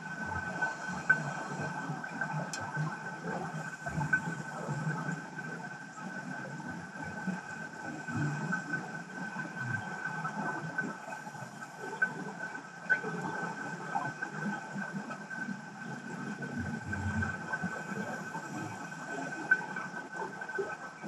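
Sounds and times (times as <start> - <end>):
low rumble of moving water: 0.0 - 21.0
sharp clicks underwater: 0.5 - 5.5.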